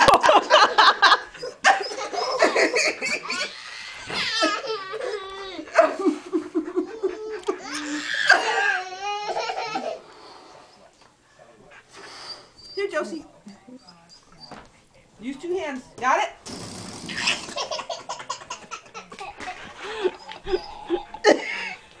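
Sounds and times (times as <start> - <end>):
toddler girl laughing: 1.1 - 10.0.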